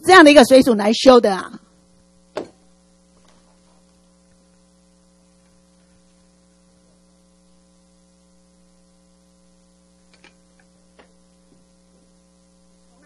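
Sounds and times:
faint mains hum: 0.0s - 13.0s.

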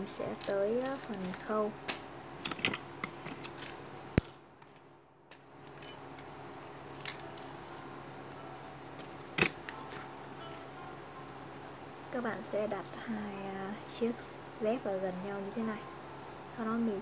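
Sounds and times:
faint steady hum: 0.0s - 17.0s
sandal clicking on tiled floor: 0.4s - 6.3s.

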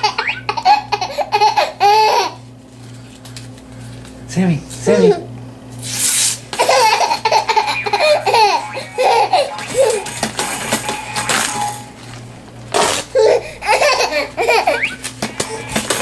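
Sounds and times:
baby laughing and giggling: 0.0s - 2.4s, 6.6s - 10.2s, 13.0s - 16.0s
paper tearing: 12.7s - 13.2s.

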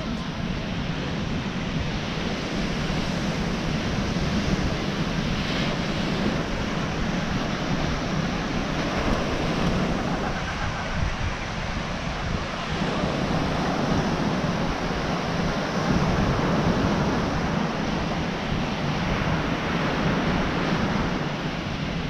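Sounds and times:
ocean surf on beach: 0.0s - 22.0s
wind buffeting microphone: 0.0s - 22.0s.

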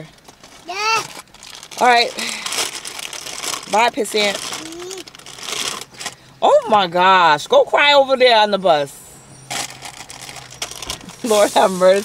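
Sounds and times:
close rustling and crinkling: 0.0s - 6.8s, 9.5s - 12.0s.

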